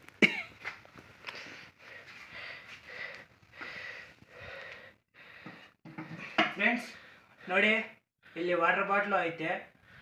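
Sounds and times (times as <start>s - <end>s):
person coughing: 0.2s - 0.6s.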